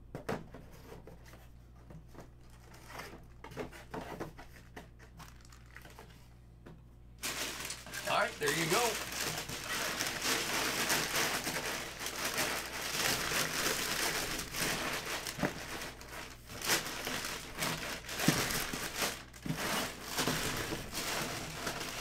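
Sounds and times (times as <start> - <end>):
packing paper rustling: 4.4 - 6.2, 7.2 - 22.0.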